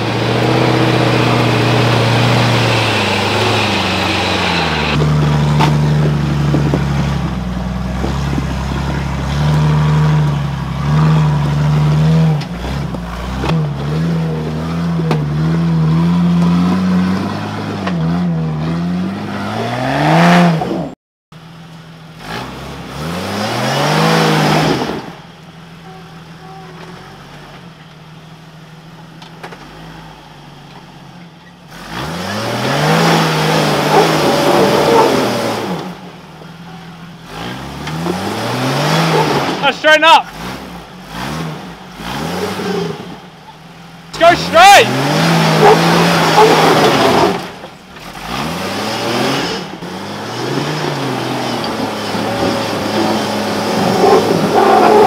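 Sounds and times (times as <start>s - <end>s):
off-road vehicle engine revving: 0.0s - 55.0s.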